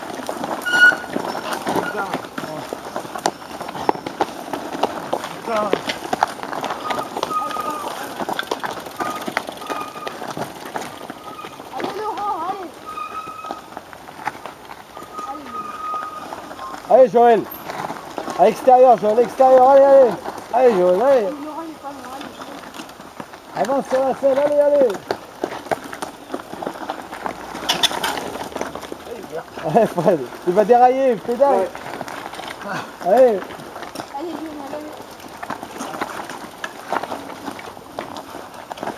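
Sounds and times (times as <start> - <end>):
bikes ridden on leafy dirt track: 0.0 - 38.9
tyres and chains clicking on leaves: 0.0 - 38.9
short high squeaks: 0.6 - 2.1, 6.8 - 8.0, 12.8 - 13.7, 15.0 - 16.8.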